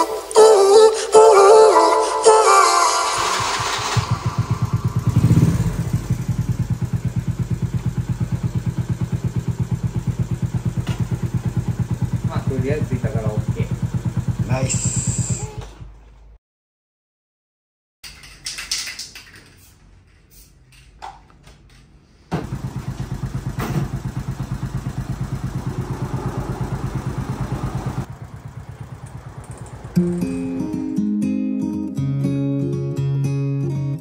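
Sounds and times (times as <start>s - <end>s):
background music: 0.0s - 4.5s, 30.0s - 34.0s
small motorcycle engine idling: 3.2s - 16.2s, 22.3s - 31.0s.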